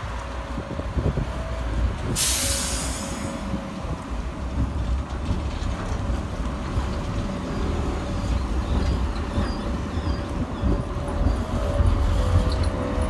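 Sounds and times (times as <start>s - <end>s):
tram rumbling past: 0.0s - 13.0s.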